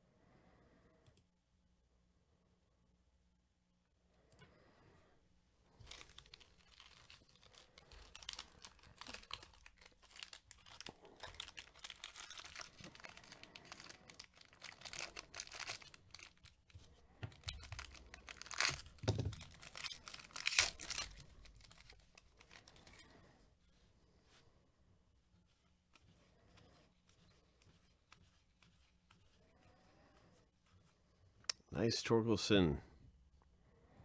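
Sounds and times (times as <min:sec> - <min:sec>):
foil wrapper tearing and crinkling: 0:05.8 - 0:23.0.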